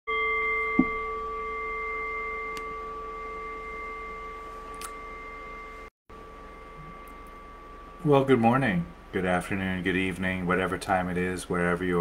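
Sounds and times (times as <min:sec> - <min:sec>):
meditation bell ringing: 0:00.1 - 0:09.0.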